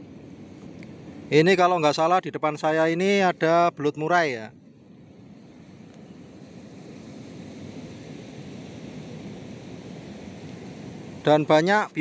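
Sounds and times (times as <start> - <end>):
sea surf rushing: 0.0 - 12.0.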